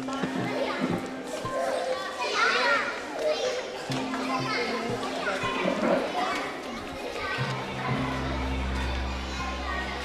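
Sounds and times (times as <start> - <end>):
children chattering and playing: 0.0 - 10.0.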